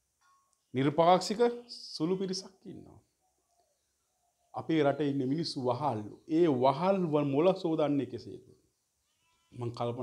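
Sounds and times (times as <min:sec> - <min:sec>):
man speaking: 0:00.8 - 0:03.0, 0:04.6 - 0:08.5, 0:09.6 - 0:10.0.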